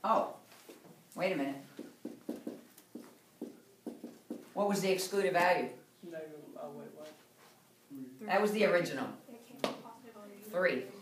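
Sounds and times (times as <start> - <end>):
marker writing on whiteboard: 1.7 - 4.6.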